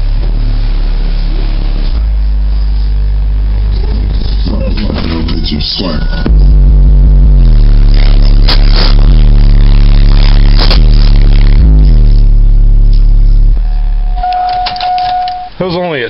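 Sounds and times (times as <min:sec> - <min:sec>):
bass-heavy music through subwoofer: 0:00.0 - 0:16.0
steady electronic beep: 0:03.8 - 0:06.3, 0:14.0 - 0:15.9.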